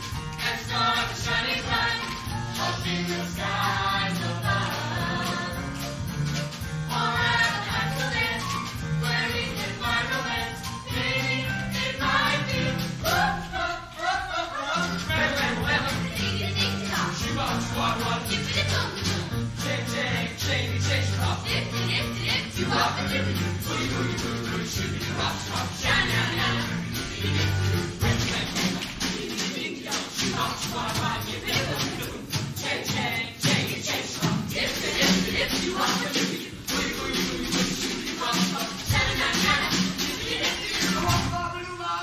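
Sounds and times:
live band accompaniment: 0.0 - 13.9, 14.7 - 41.7
performers' voices: 0.0 - 42.0.

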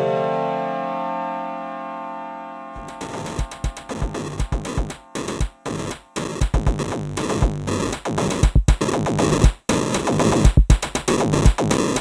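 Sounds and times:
drum machine kicks: 2.8 - 12.0
synthesizer tones: 2.8 - 12.0.

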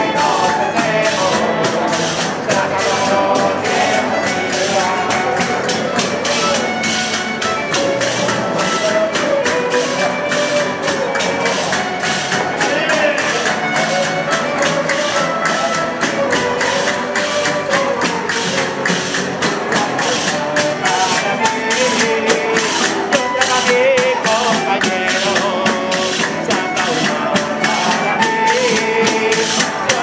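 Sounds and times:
violins and guitars playing: 0.0 - 30.0.

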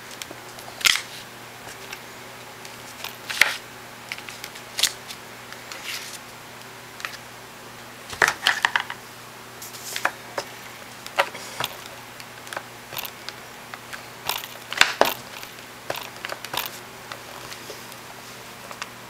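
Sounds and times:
paper handling on tabletop: 5.7 - 6.2.

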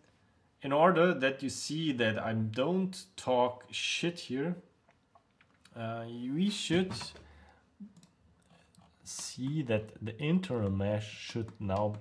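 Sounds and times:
person speaking: 5.5 - 12.0
computer clicks: 10.5 - 12.0.

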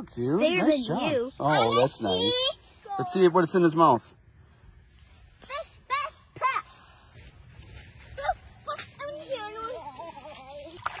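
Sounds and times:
children exclaiming: 1.4 - 3.3, 8.2 - 10.8
fish splashing into water: 10.6 - 11.0.

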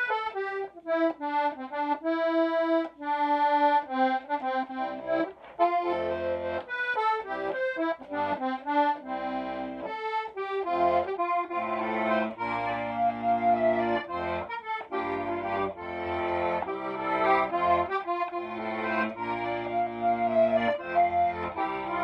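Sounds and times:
button accordion playing a tune: 0.0 - 22.0.

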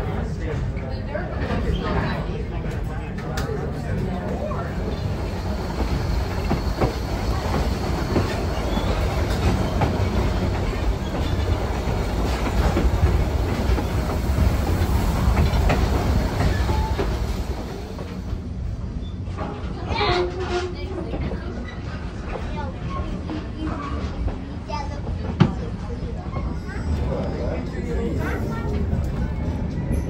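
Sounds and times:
train wheels rumbling on track: 0.0 - 30.0
rail joint clicks: 2.7 - 18.4.

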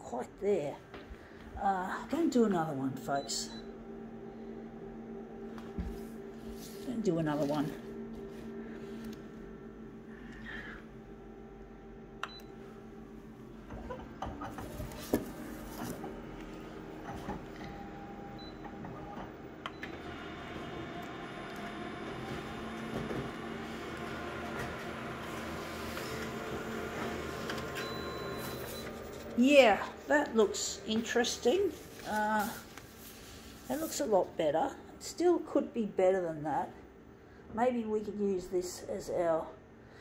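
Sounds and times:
photocopier whirring: 0.9 - 34.4.

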